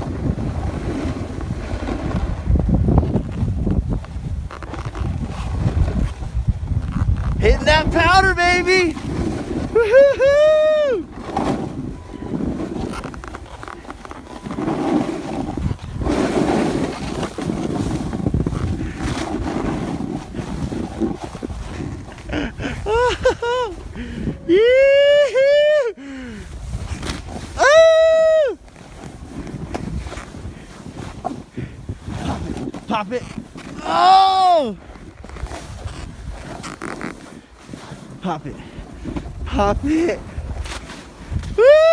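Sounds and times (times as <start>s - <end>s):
snowboard carving through snow: 0.0s - 41.9s
person whooping: 9.7s - 11.1s, 22.8s - 26.0s, 27.5s - 28.6s, 33.8s - 34.8s, 41.5s - 41.9s.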